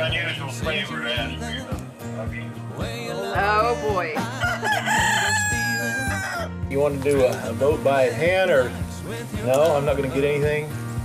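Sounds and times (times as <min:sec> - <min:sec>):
background music: 0:00.0 - 0:11.0
rooster crowing: 0:04.3 - 0:06.6.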